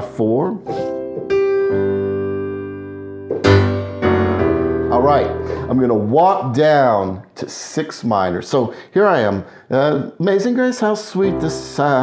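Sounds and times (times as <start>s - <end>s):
piano chord ringing: 0.7s - 6.1s, 11.2s - 12.0s.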